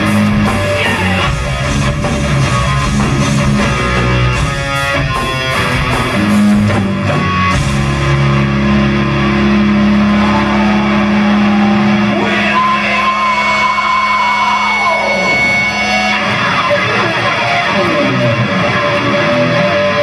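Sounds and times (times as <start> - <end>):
distorted guitar and bass chord: 0.0 - 20.0
sliding guitar noise: 0.0 - 20.0.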